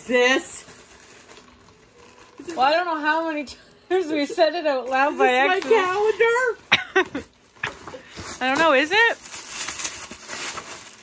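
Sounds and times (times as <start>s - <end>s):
wrapping paper rustling and tearing: 0.0s - 3.5s, 4.8s - 11.0s.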